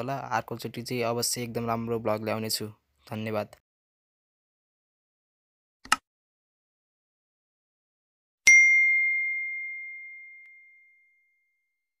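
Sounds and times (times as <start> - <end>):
bright ding chime: 8.5 - 11.7.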